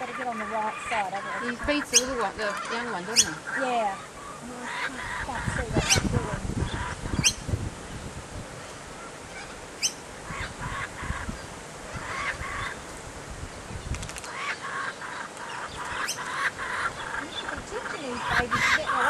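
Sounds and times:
kookaburra harsh begging calls: 0.0s - 7.5s, 9.0s - 12.8s, 14.3s - 19.0s.

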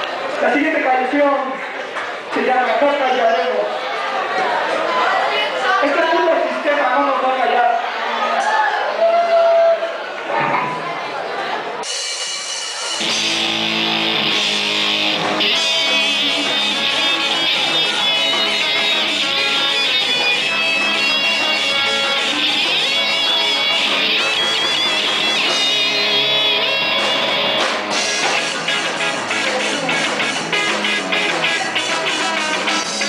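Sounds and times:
ska band playing: 11.8s - 33.0s
amplified electric guitar: 12.8s - 33.0s.

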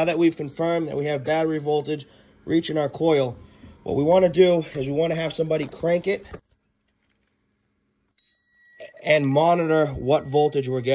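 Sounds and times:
high-pitched electronic tone: 8.2s - 10.9s.

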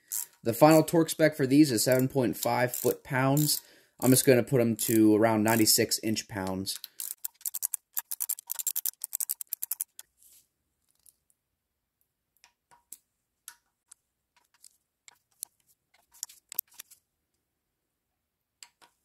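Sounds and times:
socket ratchet clicking: 6.8s - 10.0s.

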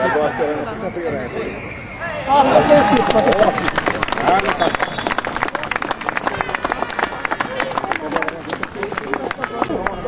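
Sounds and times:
crowd voices: 0.0s - 10.0s
spectators clapping: 2.6s - 10.0s.

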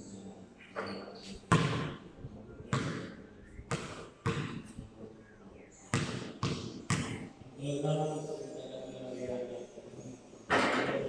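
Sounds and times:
basketball bouncing on concrete: 1.5s - 1.9s, 2.7s - 3.1s, 3.7s - 4.7s, 5.9s - 7.2s.

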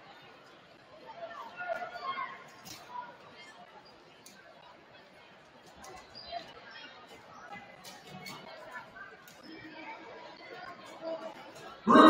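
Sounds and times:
faint chatter of voices: 0.0s - 12.0s.

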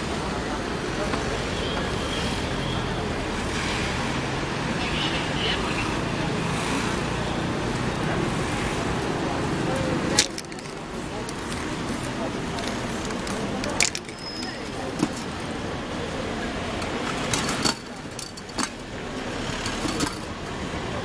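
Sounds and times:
faint background voices: 0.0s - 21.0s
road traffic: 0.0s - 21.0s.

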